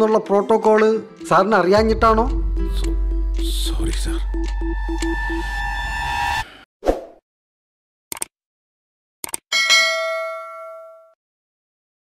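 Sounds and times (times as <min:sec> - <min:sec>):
quick mouse-like clicks: 0:08.1 - 0:08.3, 0:09.2 - 0:09.4
bright bell ding: 0:09.5 - 0:11.2.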